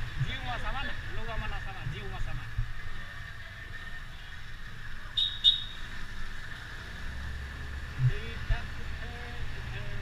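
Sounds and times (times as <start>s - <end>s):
vehicle rumble on road: 0.0s - 10.0s.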